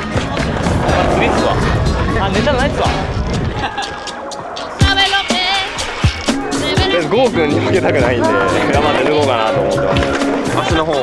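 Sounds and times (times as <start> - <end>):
background music: 0.0 - 11.0
skateboards rolling on concrete: 0.0 - 11.0.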